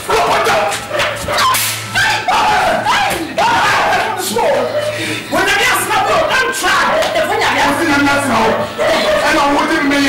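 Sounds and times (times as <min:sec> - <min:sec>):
people shouting and yelling: 0:00.0 - 0:10.0.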